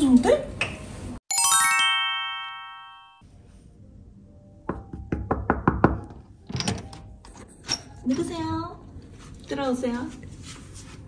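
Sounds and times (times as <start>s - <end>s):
chime: 1.3s - 3.2s
knocking on door: 4.7s - 6.2s.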